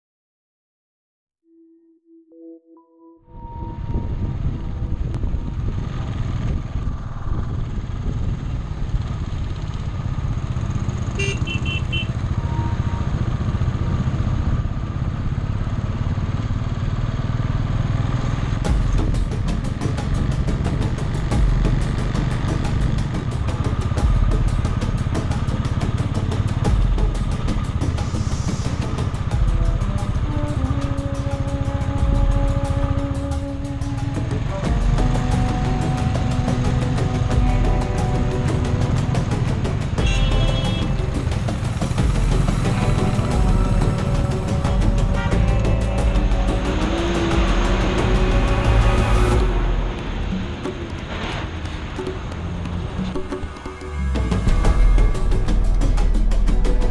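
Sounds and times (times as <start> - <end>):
wind rush on microphone: 3.4 - 10.1
motorcycle engine running: 4.0 - 56.9.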